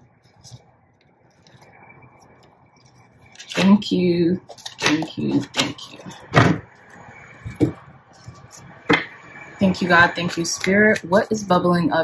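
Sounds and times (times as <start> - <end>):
cards rustling: 0.1 - 3.8.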